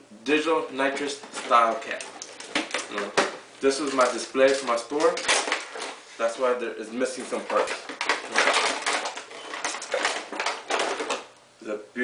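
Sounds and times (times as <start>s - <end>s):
plastic case rattling and clicking: 0.9s - 6.0s, 7.1s - 11.3s.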